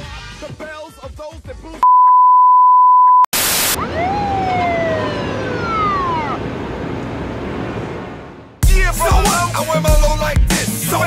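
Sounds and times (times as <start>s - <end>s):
siren winding down: 3.6s - 7.1s.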